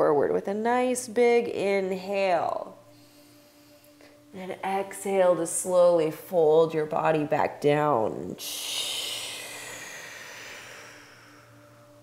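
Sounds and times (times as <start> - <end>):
breathy exhale through the mouth: 2.9 - 4.3, 8.8 - 12.0.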